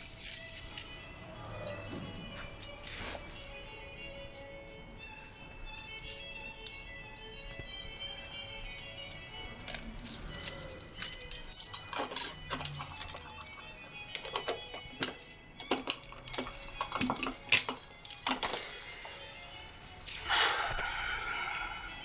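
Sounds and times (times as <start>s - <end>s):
metal chain and padlock rattling: 0.0s - 4.1s, 5.2s - 19.5s
soft background music: 0.0s - 22.0s.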